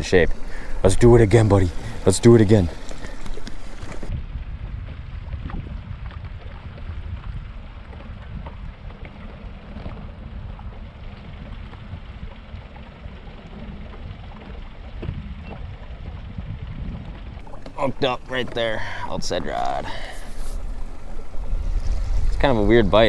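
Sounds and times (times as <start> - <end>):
water around boat: 0.0 - 23.0
wind rumble: 0.0 - 23.0.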